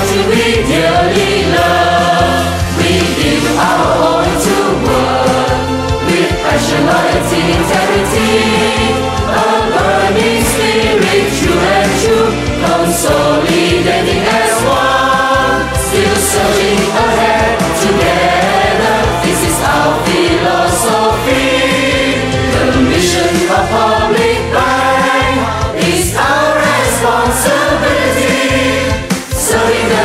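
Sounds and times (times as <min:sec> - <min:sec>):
group singing in chorus: 0:00.0 - 0:30.0
instrumental backing track: 0:00.0 - 0:30.0.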